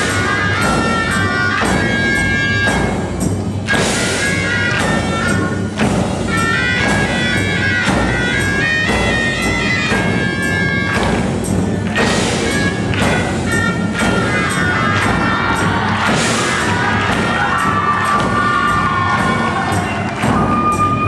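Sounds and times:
nasal reed horns melody: 0.0s - 18.3s
steady drum beat: 0.0s - 21.0s
audience cheering: 12.0s - 21.0s.

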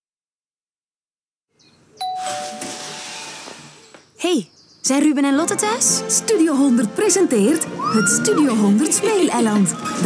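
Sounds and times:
doorbell two-note ding-dong chime: 2.0s - 2.9s.

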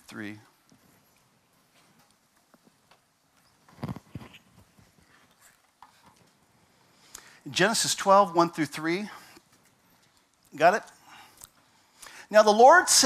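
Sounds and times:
faint clicks and knocks: 0.6s - 6.5s.

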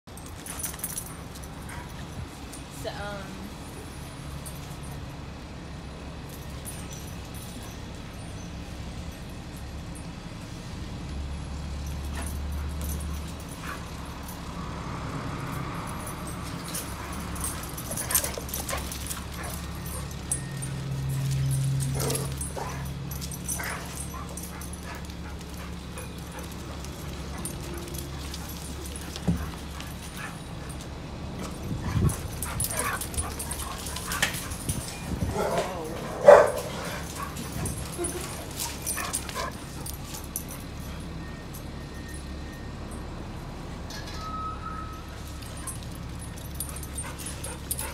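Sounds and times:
dogs playing: 0.1s - 2.8s, 11.6s - 42.4s, 45.1s - 47.9s
dog barks: 35.3s - 37.4s.

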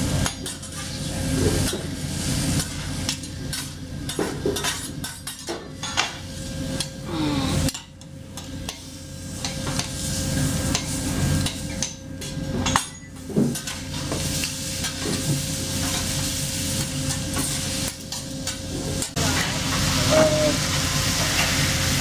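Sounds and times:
food sizzling: 0.0s - 5.1s, 8.4s - 11.8s, 13.2s - 22.0s.

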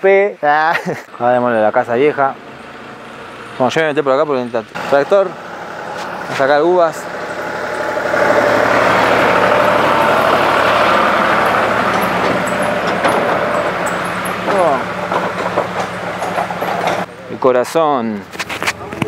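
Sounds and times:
tractor diesel engine passing: 1.0s - 17.8s.

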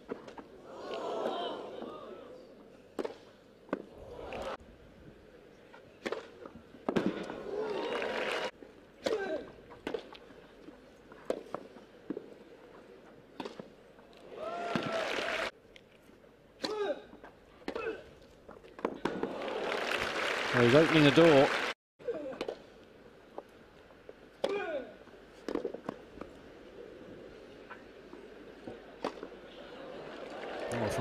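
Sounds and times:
racket striking tennis ball: 6.0s - 7.3s, 24.4s - 24.7s, 25.4s - 26.0s
crowd applause and cheering: 7.4s - 8.5s, 14.4s - 15.5s, 19.2s - 21.8s, 29.7s - 31.0s.

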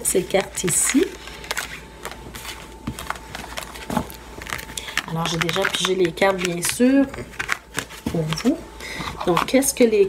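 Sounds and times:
cards sliding and rustling: 0.7s - 8.5s
cards tapping: 2.8s - 8.6s.

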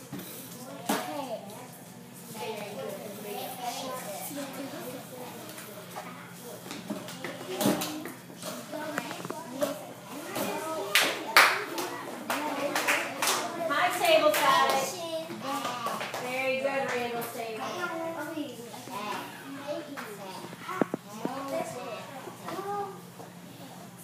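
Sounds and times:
children clapping: 10.9s - 13.6s, 14.2s - 14.9s, 15.6s - 17.0s.

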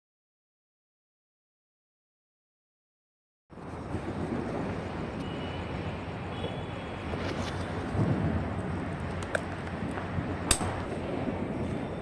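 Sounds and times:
low outdoor rumble with hiss: 3.5s - 12.0s.

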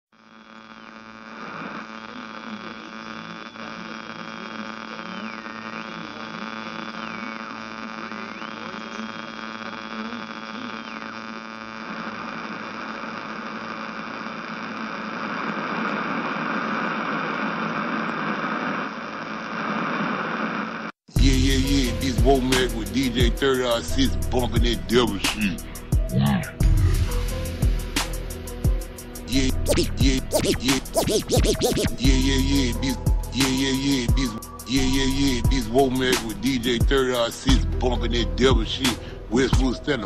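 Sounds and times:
hip-hop beat: 21.2s - 26.6s, 29.3s - 37.7s, 38.4s - 40.0s
buzzing hum: 25.6s - 34.0s
high thin sliding tone: 29.7s - 32.0s.

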